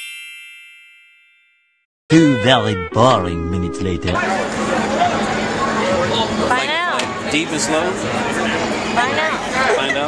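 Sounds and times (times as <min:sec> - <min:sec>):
bell-like ding: 0:00.0 - 0:01.8.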